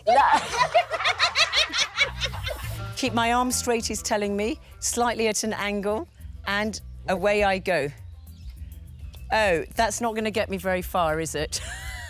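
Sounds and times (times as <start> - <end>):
women laughing: 0.0 - 2.8, 11.6 - 12.0
background music: 0.0 - 12.0.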